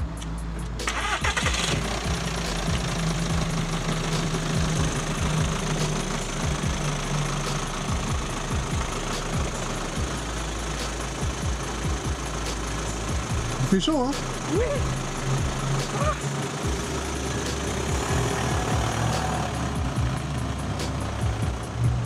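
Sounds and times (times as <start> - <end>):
car engine starting and running: 0.0 - 22.0.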